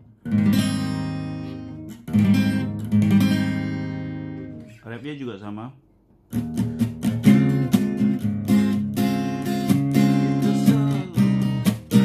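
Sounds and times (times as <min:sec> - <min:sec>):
acoustic guitar strumming: 0:00.0 - 0:04.8, 0:06.3 - 0:12.0.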